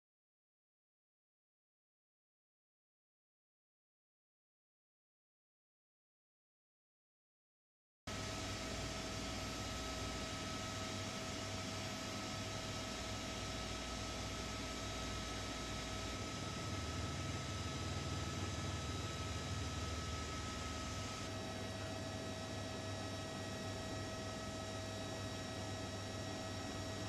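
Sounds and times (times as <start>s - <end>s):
steady hum tones: 8.1s - 27.0s.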